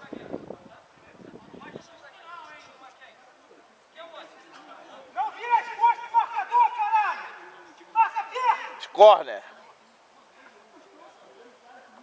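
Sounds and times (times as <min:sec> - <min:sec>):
distant shouting voices: 0:05.0 - 0:09.2.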